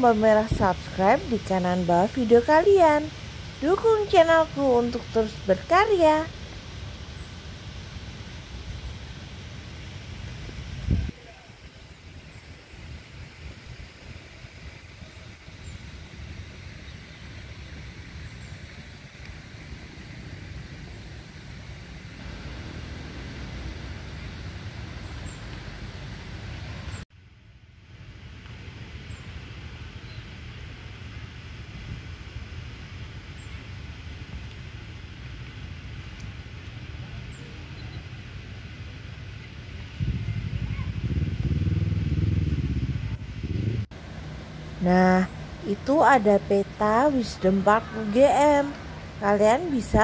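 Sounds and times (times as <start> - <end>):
steady low outdoor rumble: 0.0 - 50.0.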